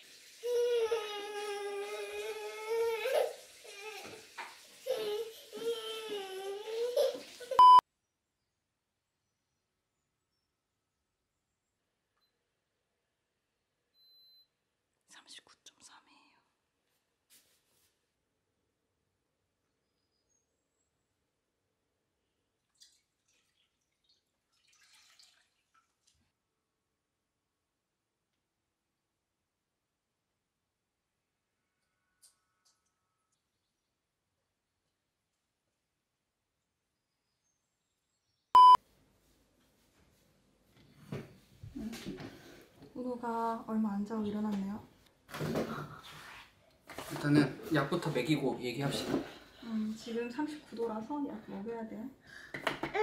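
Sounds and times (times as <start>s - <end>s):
thermometer beep: 7.6s - 7.8s, 38.6s - 38.8s
person whispering: 15.1s - 16.6s.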